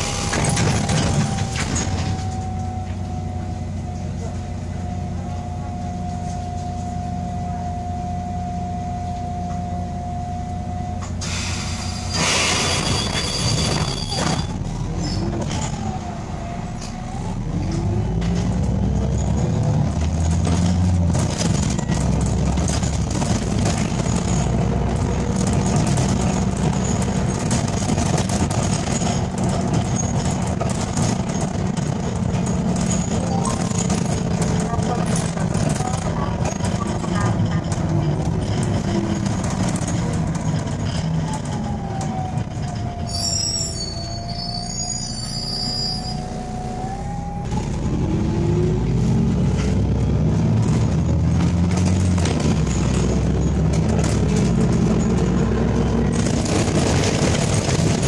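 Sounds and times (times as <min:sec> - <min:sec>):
bus drivetrain whine: 0:00.0 - 0:58.0
bus engine running: 0:00.0 - 0:58.0
bus ride noise: 0:00.0 - 0:58.0.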